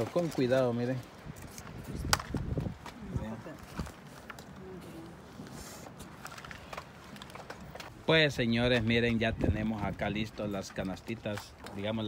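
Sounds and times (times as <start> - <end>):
rustling: 0.0 - 8.0.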